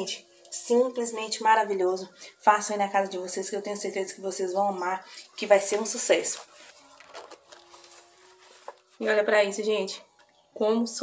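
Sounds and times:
faint handling noise: 0:05.6 - 0:09.0.

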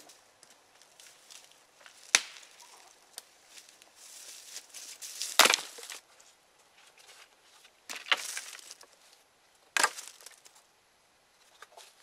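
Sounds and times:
dry leaves rustling and crunching: 0:00.0 - 0:06.0, 0:07.9 - 0:09.1, 0:09.8 - 0:10.6
dry wood snapping: 0:01.9 - 0:03.3, 0:05.3 - 0:06.0, 0:09.8 - 0:10.5.

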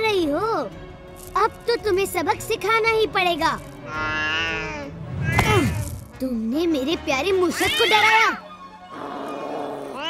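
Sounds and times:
cat meowing: 0:03.8 - 0:05.8, 0:07.6 - 0:08.4, 0:09.3 - 0:10.0.

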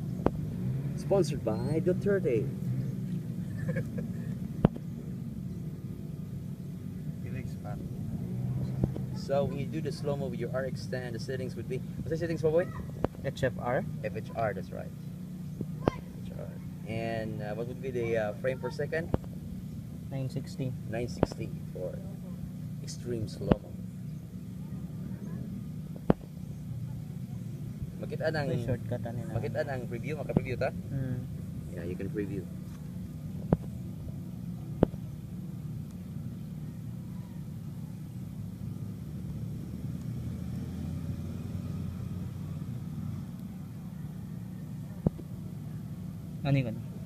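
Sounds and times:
low outdoor rumble: 0:00.0 - 0:47.0
steady low hum: 0:00.0 - 0:47.0.

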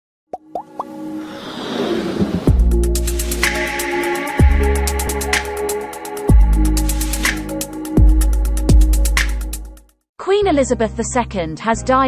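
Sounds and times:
whoosh: 0:01.2 - 0:03.6.

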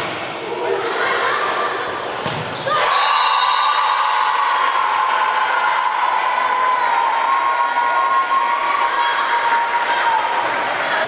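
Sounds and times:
crowd noise in sports hall: 0:00.0 - 0:11.0.

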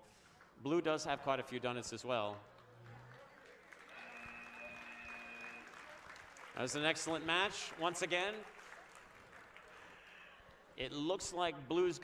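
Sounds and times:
faint crowd applause: 0:00.0 - 0:10.8
electronic buzzer tone: 0:03.9 - 0:05.8.

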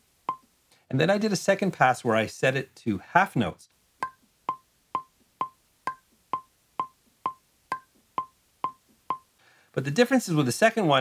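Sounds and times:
metronome clicking: 0:00.3 - 0:00.5, 0:04.0 - 0:09.3.

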